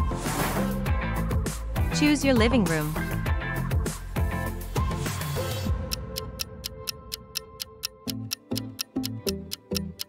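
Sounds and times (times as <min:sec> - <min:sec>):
background music: 0:00.0 - 0:10.0
clock-like ticks: 0:05.7 - 0:10.0.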